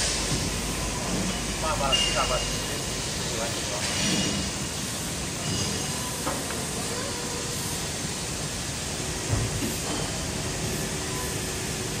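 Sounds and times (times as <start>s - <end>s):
workshop background hiss: 0.0s - 12.0s.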